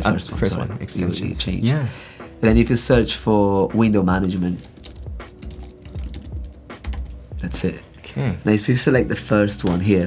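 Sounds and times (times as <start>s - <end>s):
typing on computer keyboard: 4.6s - 7.2s.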